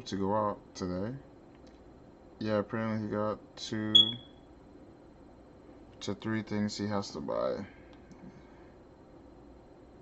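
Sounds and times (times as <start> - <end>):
short high-pitched beep: 4.0 - 4.4.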